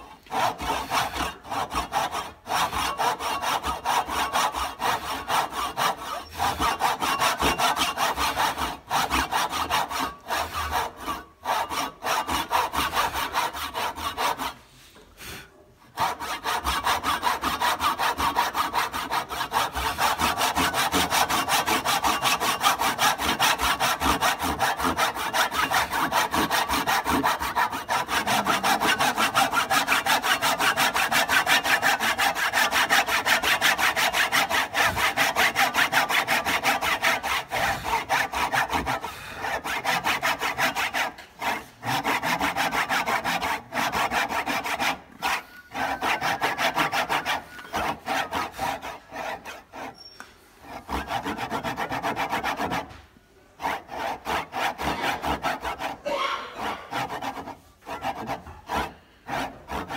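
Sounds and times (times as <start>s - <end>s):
hand saw cutting wood: 0.0s - 59.9s.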